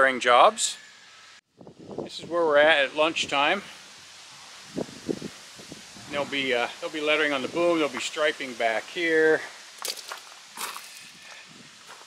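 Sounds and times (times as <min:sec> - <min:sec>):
footsteps on gravel: 0:09.8 - 0:12.0.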